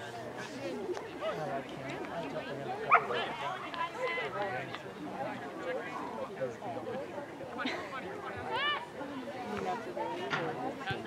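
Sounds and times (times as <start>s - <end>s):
chatter of spectators: 0.0s - 11.0s.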